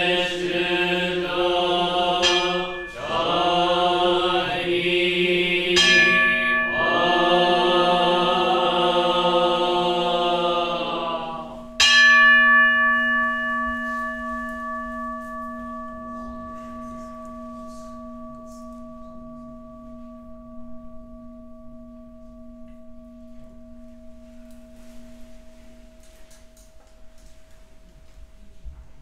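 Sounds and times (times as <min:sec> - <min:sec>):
voices chanting: 0:00.0 - 0:11.8
large temple bell ringing: 0:00.0 - 0:28.2.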